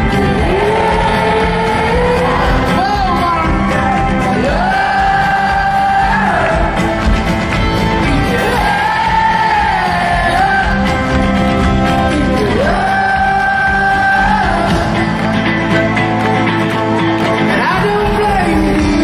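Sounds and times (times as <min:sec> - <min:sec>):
crowd singing and shouting: 0:00.0 - 0:19.0
folk-rock band playing: 0:00.0 - 0:19.0.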